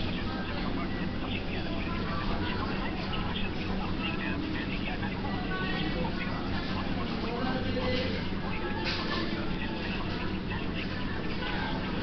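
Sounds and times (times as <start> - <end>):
chatter of many voices: 0.0 - 12.0
steady low hum: 0.0 - 12.0.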